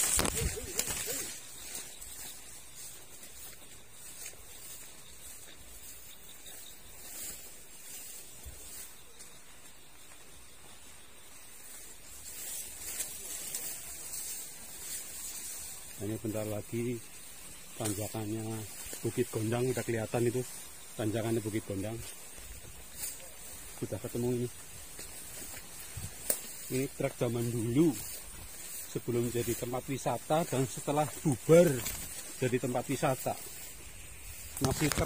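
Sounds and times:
leaves and grass rustling: 0.0 - 35.0.

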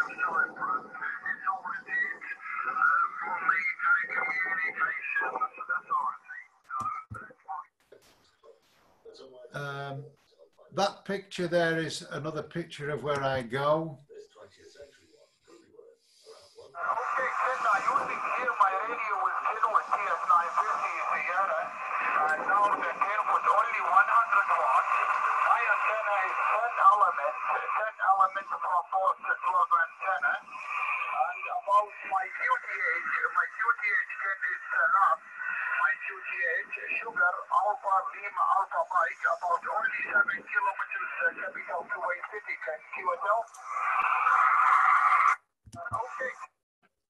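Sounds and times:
voices over radio speaker: 0.0 - 46.6.

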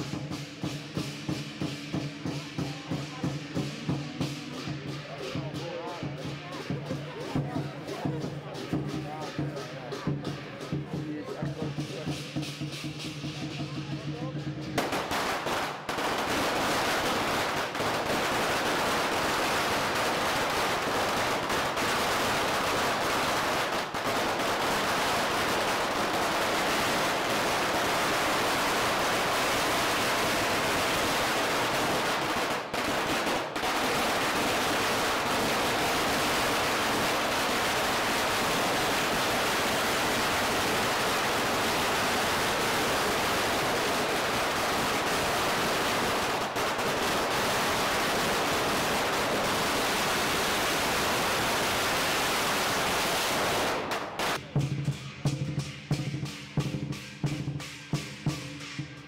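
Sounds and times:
firecrackers crackling: 0.0 - 59.0.

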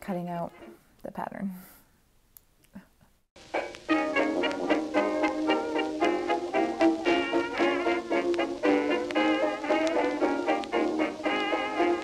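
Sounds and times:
upbeat bouncy music: 3.4 - 12.0.

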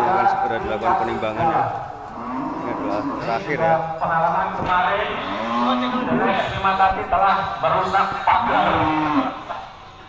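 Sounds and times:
cow mooing: 2.1 - 3.6, 5.1 - 6.5, 8.4 - 9.5.

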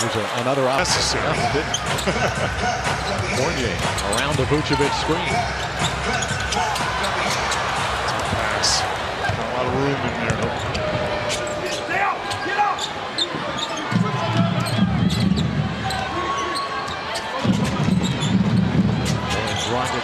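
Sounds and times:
arena crowd noise: 0.0 - 20.0
sneakers squeaking: 1.3 - 9.4, 10.1 - 20.0.

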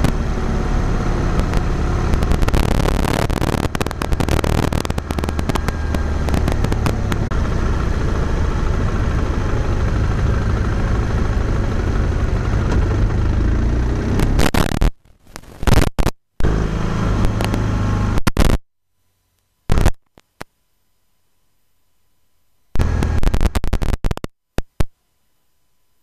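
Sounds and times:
wind and road noise: 0.0 - 18.6, 22.8 - 24.9.

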